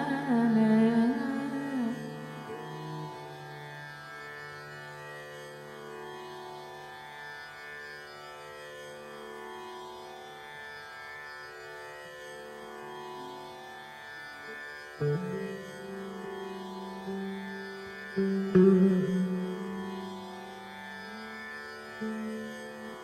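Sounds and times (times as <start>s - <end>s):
electric saz melody: 15.0s - 23.0s.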